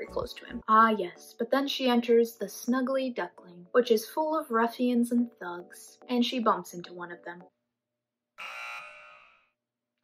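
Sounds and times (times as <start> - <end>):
wrong answer buzzer: 8.4 - 9.4.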